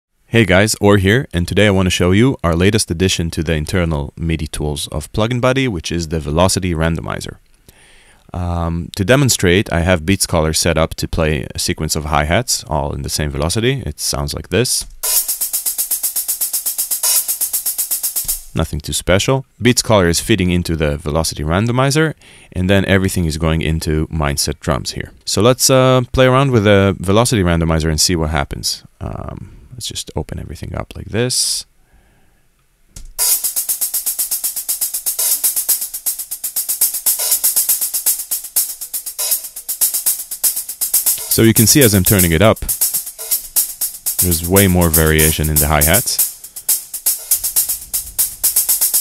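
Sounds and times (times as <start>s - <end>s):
closed hi-hat hits: 14.7s - 19.0s, 33.0s - 49.0s.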